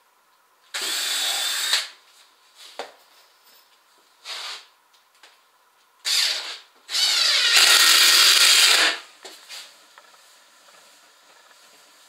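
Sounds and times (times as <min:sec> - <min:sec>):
cordless drill into wood: 0:00.7 - 0:02.0, 0:06.0 - 0:09.0.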